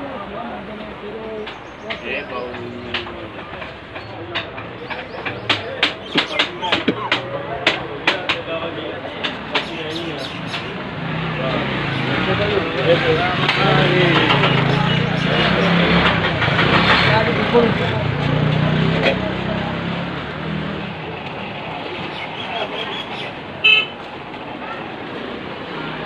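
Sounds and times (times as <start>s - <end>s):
engine traffic rumble: 0.0s - 26.0s
many people talking: 0.0s - 26.0s
murmur of voices: 0.0s - 26.0s.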